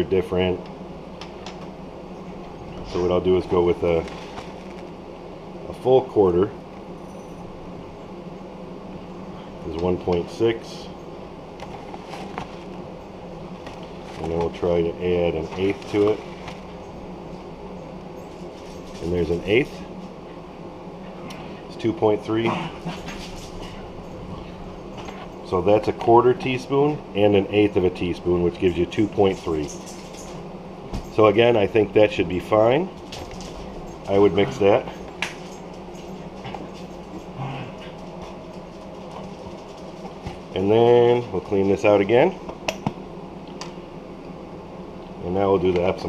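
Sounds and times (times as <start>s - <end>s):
machinery hum: 0.0s - 46.0s.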